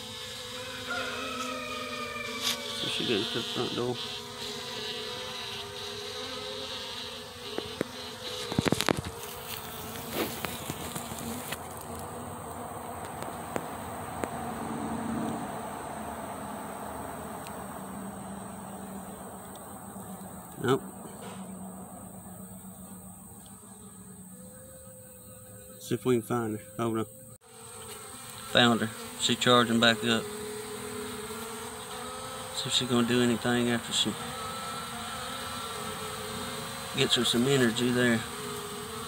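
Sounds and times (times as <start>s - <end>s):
honeybees buzzing: 0.0s - 39.0s.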